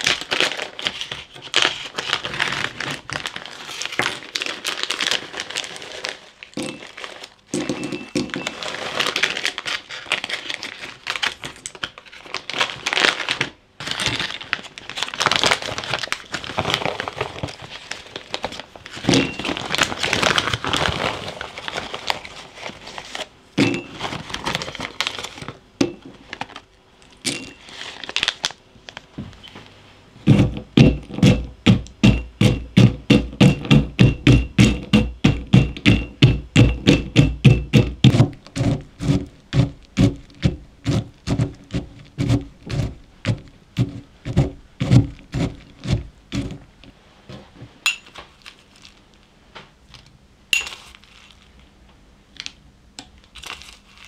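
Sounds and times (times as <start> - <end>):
plastic bags crinkling: 0.0 - 29.5, 47.9 - 49.2, 49.9 - 51.6, 53.2 - 54.0
pestle pounding nuts: 7.5 - 8.6, 30.2 - 46.6.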